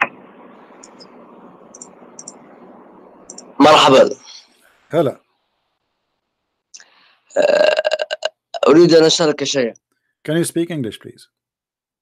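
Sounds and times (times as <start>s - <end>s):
choppy voice over internet call: 3.3s - 5.2s.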